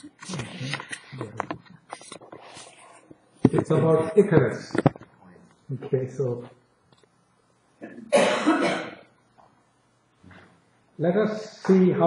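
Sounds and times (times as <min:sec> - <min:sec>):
person coughing: 0:07.8 - 0:09.1.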